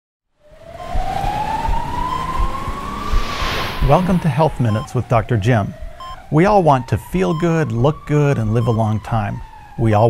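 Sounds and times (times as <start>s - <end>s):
synthesized tone gliding upward: 0.4s - 6.4s
whoosh: 0.8s - 4.8s
low thumps: 0.8s - 6.4s
man's voice-over: 3.8s - 10.0s.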